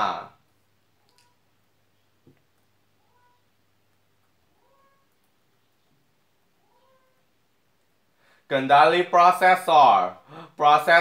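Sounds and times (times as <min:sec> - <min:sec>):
cat meowing faintly: 0:03.0 - 0:03.5, 0:04.5 - 0:05.2, 0:06.6 - 0:07.3.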